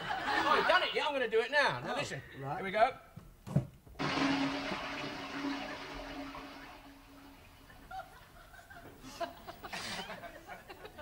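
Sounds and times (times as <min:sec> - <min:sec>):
toilet flushing: 0:04.0 - 0:08.2.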